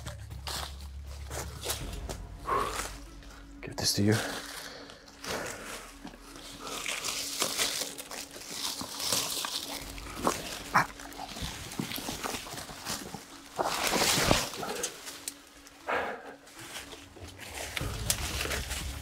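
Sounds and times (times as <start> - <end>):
leaves and branches rustling: 0.0 - 19.0.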